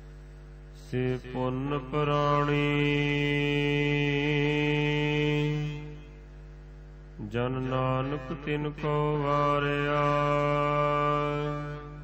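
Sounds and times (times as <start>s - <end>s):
person singing long note: 0.9s - 6.2s, 7.2s - 12.0s.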